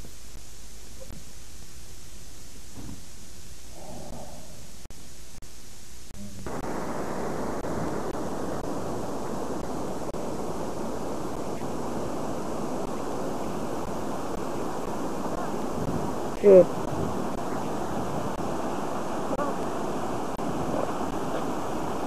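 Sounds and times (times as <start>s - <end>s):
wind rushing over microphone: 6.4s - 22.0s.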